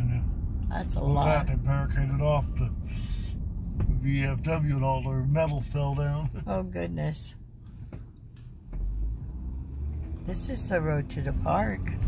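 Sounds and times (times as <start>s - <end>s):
car rumble from inside cabin: 0.0s - 12.0s.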